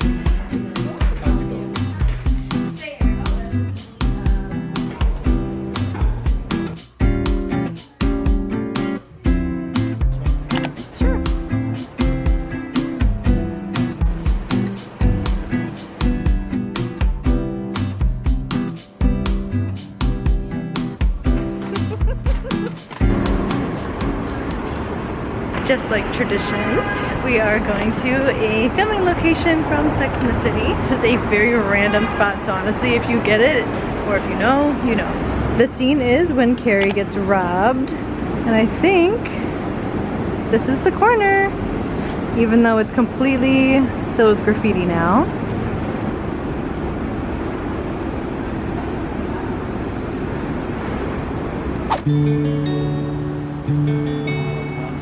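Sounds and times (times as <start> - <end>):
traffic: 0.0 - 55.0
sharp click: 10.5 - 10.8.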